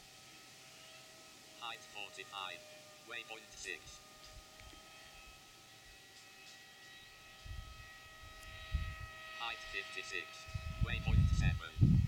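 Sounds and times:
electric motor and propeller hum: 0.0s - 12.0s
wind rumbling on microphone: 7.4s - 9.2s, 10.4s - 12.0s.

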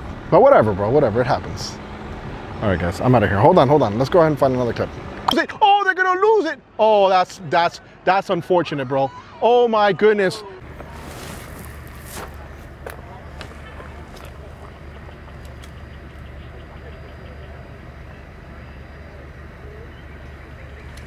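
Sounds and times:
low engine-like hum: 0.0s - 5.6s, 10.4s - 21.0s.

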